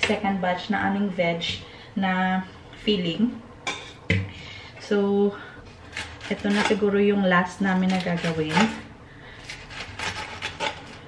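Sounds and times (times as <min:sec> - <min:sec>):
spoon scraping in a bowl: 0:09.5 - 0:11.0.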